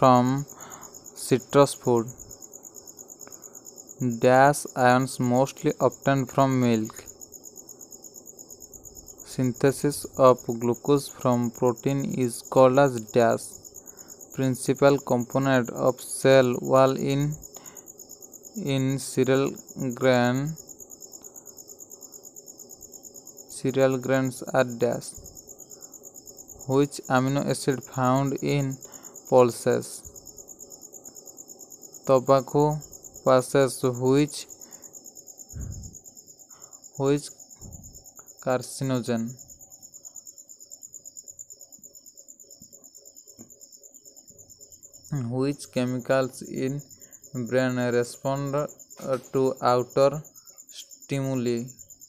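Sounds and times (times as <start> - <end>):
cricket chirping: 0.0 - 52.0.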